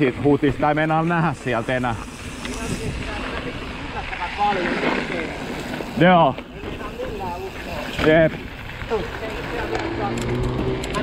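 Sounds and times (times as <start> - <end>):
bike tyres on dirt trail: 0.0 - 11.0
wind rushing: 1.3 - 4.1.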